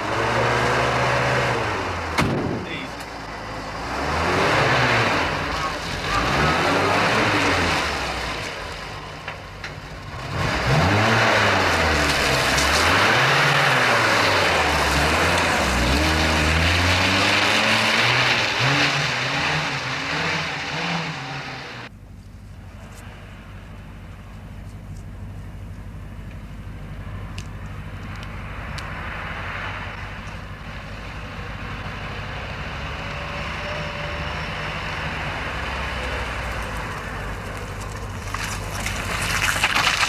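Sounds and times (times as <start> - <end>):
vehicle engine revving: 0.0 - 9.3, 9.9 - 21.9.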